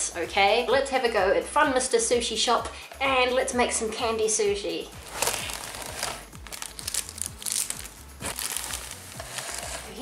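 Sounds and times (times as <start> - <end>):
packaging crinkling and rustling: 5.0 - 10.0.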